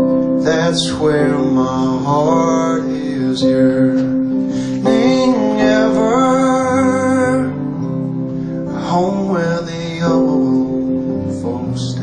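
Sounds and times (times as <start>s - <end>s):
live band playing slow song: 0.0s - 12.0s.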